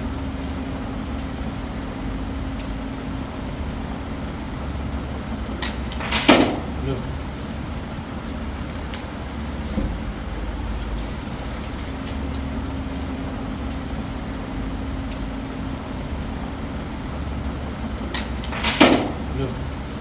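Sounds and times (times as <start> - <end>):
low hum and rumble: 0.0 - 20.0.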